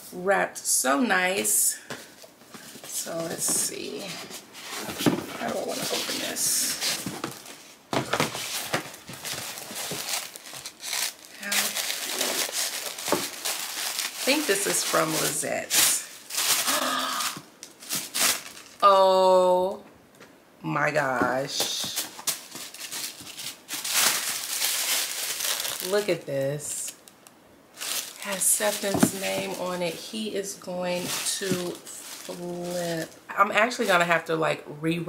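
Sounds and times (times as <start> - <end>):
wrapping paper rustling: 2.1 - 18.8, 21.7 - 33.2.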